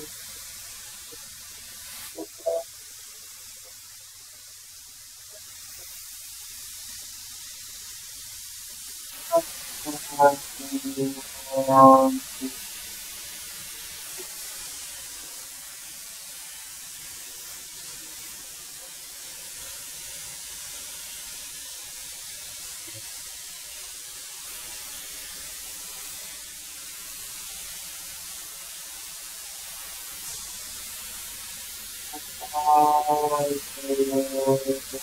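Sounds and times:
thickness planer hissing: 0.0s - 20.9s, 24.3s - 35.0s.

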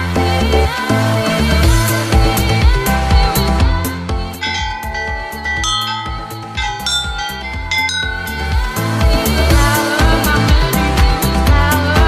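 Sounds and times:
pop music with bell-like tones: 0.0s - 12.0s.

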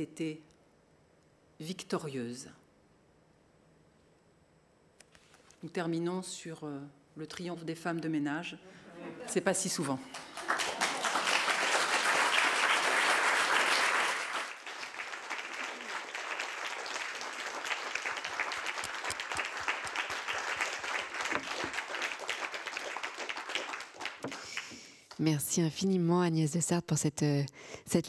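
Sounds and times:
audience applauding: 10.1s - 24.9s.

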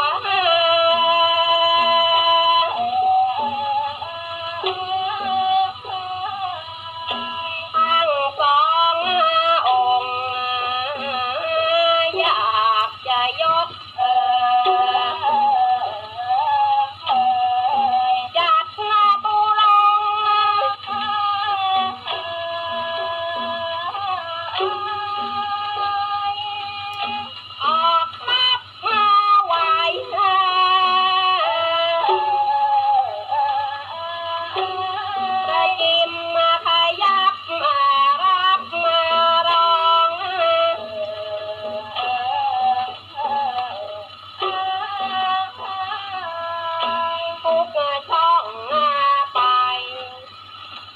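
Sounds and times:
steady low hum: 0.0s - 50.9s
voices singing on old record: 0.0s - 50.9s.

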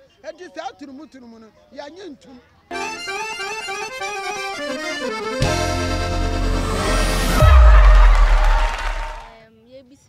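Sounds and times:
intro theme tune: 2.7s - 9.4s
deep bass hit with noise wash: 5.4s - 9.3s.

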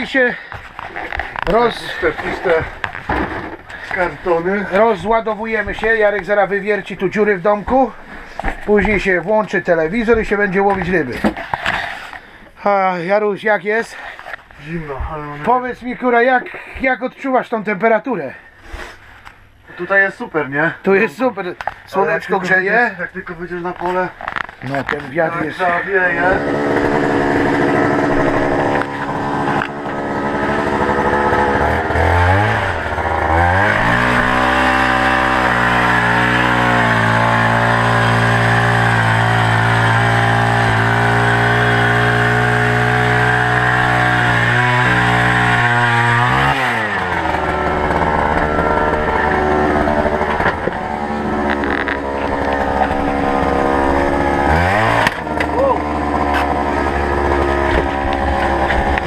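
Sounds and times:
ice auger engine revving: 0.0s - 12.4s, 24.2s - 59.0s.

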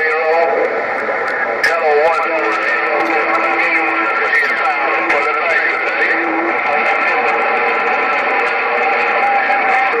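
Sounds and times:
garbled distant voices: 0.0s - 10.0s
radio static: 0.0s - 10.0s.

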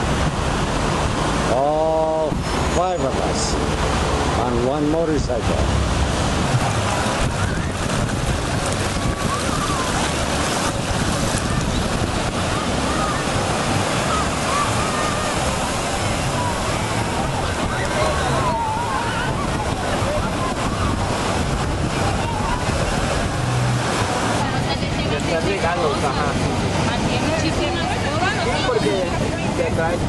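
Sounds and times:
distant voices: 0.0s - 30.0s
ocean surf breaking: 0.0s - 30.0s
wind buffeting microphone: 0.0s - 30.0s.

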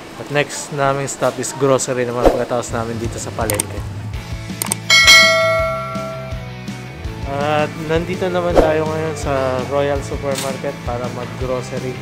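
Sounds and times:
bell-like chime: 4.9s - 6.4s.

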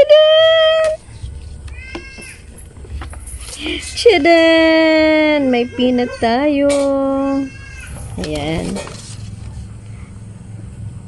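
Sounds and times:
paper rustling and crinkling: 8.0s - 9.7s.

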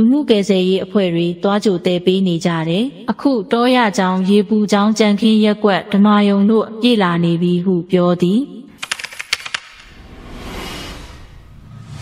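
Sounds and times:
sharp clicks: 8.7s - 9.9s
soft whooshing swell: 9.9s - 12.0s.

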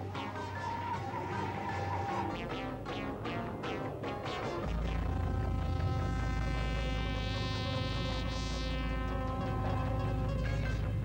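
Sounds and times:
sustained drone of held tones: 0.0s - 11.0s
deep low rumble: 4.6s - 11.0s.

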